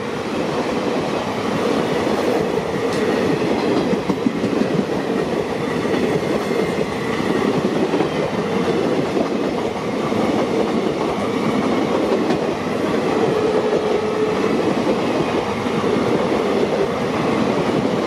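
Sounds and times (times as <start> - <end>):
train wheels rumbling on rail: 0.0 - 18.0
wheels clickety-clack over rail joints: 0.0 - 18.0.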